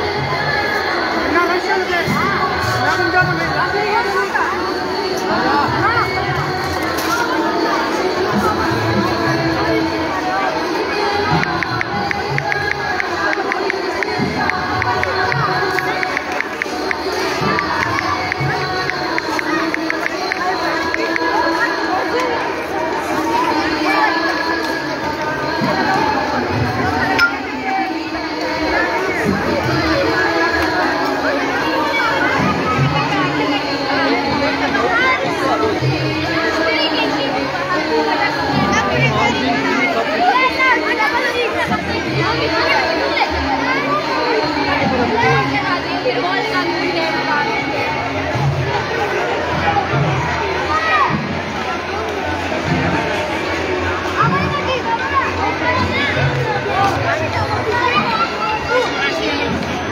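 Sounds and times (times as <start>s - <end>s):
crowd talking and calling out: 0.0s - 59.9s
children shouting: 4.4s - 59.9s.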